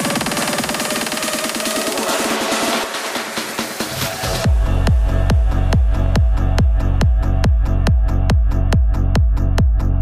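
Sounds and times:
electronic trance music: 0.0 - 10.0.

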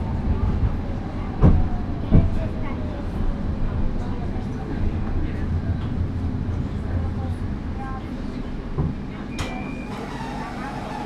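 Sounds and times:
light rail car rumble: 0.0 - 11.0.

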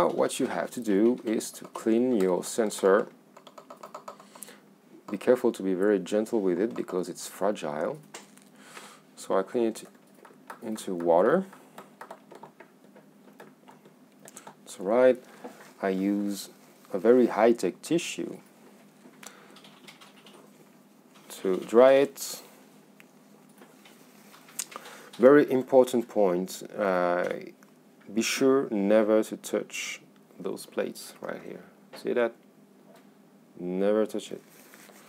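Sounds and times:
paper tissue rustling: 34.4 - 35.0.

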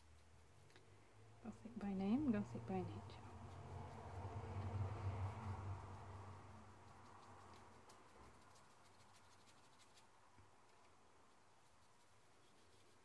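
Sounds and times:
low rumble: 2.2 - 7.1
paintbrush scratching on fabric: 2.3 - 10.2, 10.8 - 13.0.

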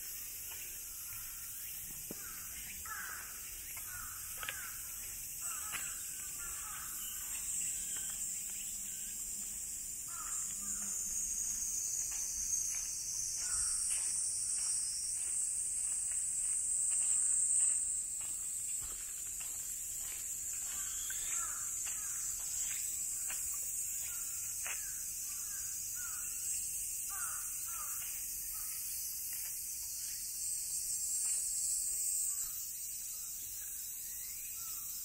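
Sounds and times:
cicadas droning: 0.0 - 35.0
footsteps on stone and dirt: 0.3 - 24.9.

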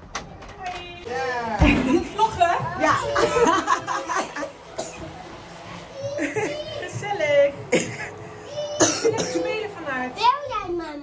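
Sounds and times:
sharp coughs: 4.2 - 5.0, 7.7 - 8.2, 8.8 - 9.5.

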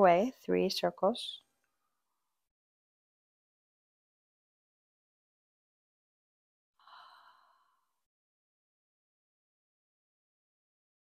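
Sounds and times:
woman sighing: 6.8 - 7.8.

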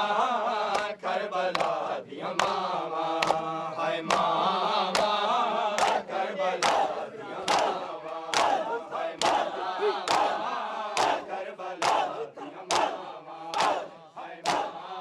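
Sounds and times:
crowd slapping chests in unison: 0.0 - 15.0
crowd of voices calling out: 6.6 - 15.0.

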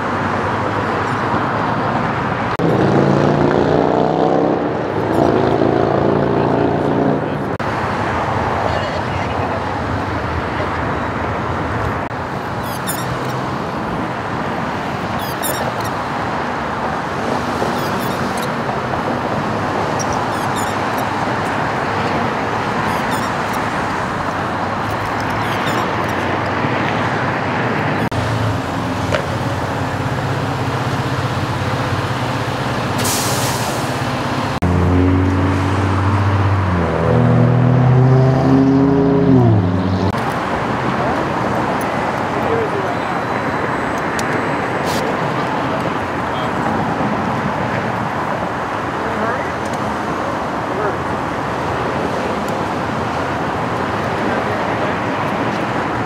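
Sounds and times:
freeway traffic noise: 0.0 - 56.0.

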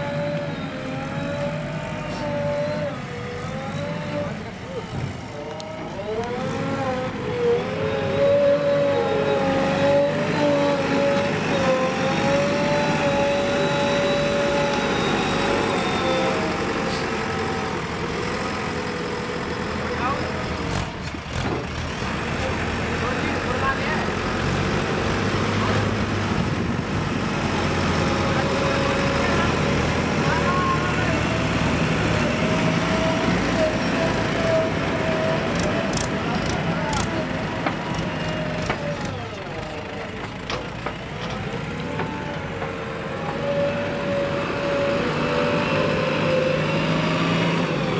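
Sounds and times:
diesel engine under load: 0.0 - 47.9.

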